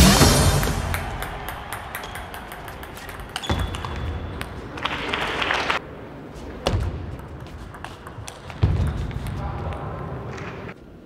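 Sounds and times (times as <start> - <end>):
music: 0.0 - 1.2.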